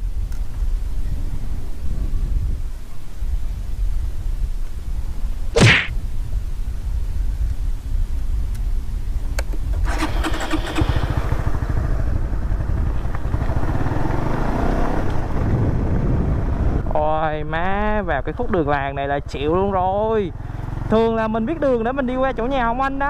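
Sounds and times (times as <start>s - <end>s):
motorcycle engine idling and revving: 9.6s - 17.1s, 17.8s - 23.0s.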